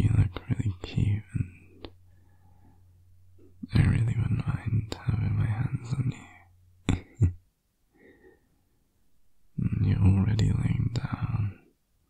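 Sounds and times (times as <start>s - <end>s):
man whispering: 0.0s - 2.0s, 3.4s - 7.4s, 9.5s - 11.8s
steady low hum: 0.0s - 12.0s.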